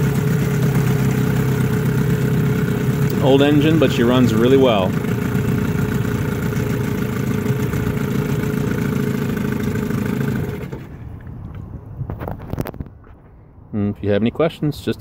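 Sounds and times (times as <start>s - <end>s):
outboard motor running: 0.0s - 11.3s.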